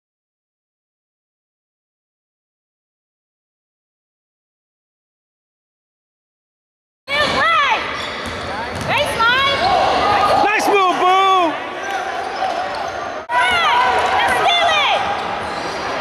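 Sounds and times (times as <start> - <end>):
sneakers squeaking: 7.1 - 10.2, 11.7 - 16.0
echoing gym noise: 7.1 - 16.0
players' voices: 7.1 - 16.0
basketball dribbling: 8.2 - 9.0.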